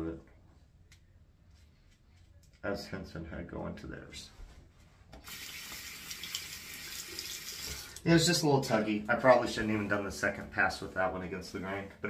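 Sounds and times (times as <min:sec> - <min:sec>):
tap water running into sink: 0:05.2 - 0:08.0.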